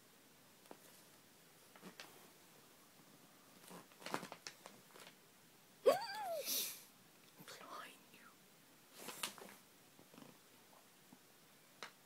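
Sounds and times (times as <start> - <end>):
faint whispering: 7.4 - 8.4.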